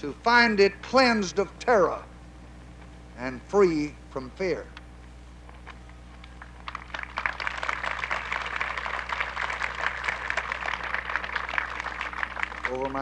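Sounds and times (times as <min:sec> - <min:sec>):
audience applauding: 0:06.2 - 0:13.0.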